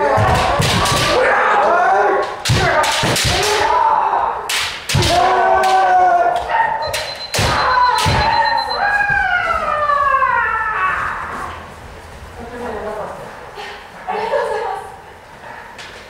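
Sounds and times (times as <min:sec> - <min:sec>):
people shouting: 0:00.0 - 0:11.6
bamboo swords striking: 0:00.1 - 0:01.3, 0:02.2 - 0:03.8, 0:04.4 - 0:06.0.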